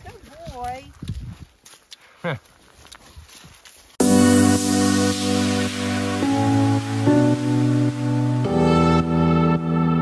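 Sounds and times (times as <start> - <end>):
feet shuffling through dry leaves: 0.1 - 7.1.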